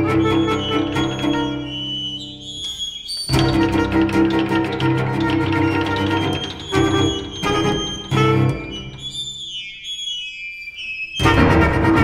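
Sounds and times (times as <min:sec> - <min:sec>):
chamber ensemble playing: 0:00.0 - 0:09.6, 0:11.2 - 0:12.0
high pitches gliding downward: 0:00.0 - 0:12.0.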